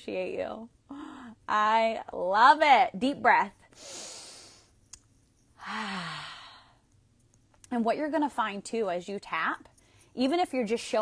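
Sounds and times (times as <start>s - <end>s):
woman sighing: 0.9s - 1.4s, 5.6s - 6.8s.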